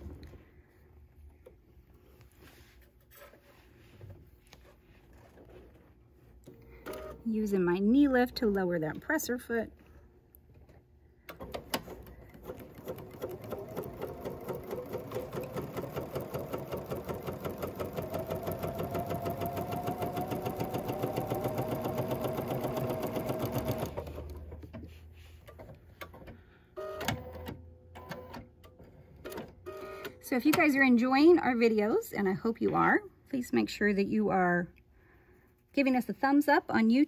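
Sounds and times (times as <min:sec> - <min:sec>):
sewing machine stitching: 0:11.4 - 0:24.5.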